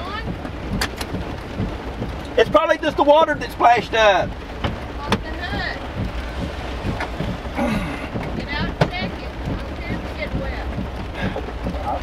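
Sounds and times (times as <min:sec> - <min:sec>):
engine idling hum: 0:00.0 - 0:12.0
sharp taps: 0:04.6 - 0:07.4.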